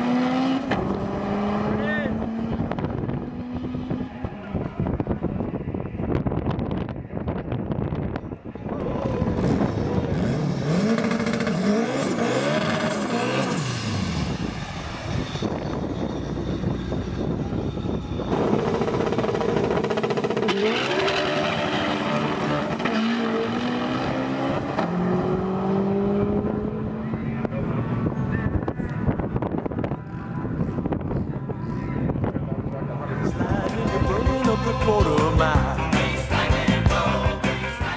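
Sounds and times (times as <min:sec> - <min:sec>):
car engines revving at full throttle: 0:00.0 - 0:37.9.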